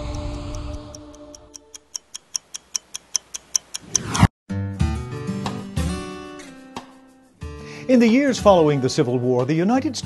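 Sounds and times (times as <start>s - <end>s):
clock ticking: 0.0s - 4.3s.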